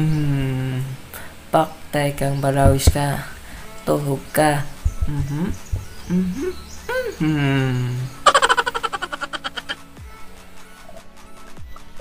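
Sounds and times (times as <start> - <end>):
man humming: 0.0 - 1.0, 5.0 - 9.8.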